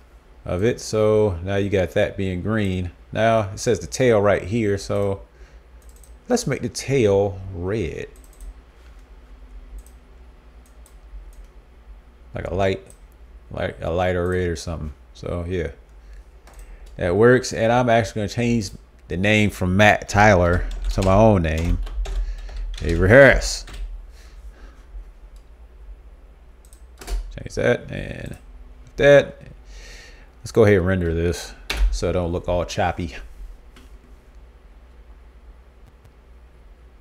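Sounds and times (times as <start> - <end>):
faint low hum: 0.0 - 37.0
computer mouse clicks: 5.8 - 6.2, 8.2 - 9.0, 9.7 - 10.0, 10.6 - 11.6, 15.9 - 17.0, 26.6 - 27.2.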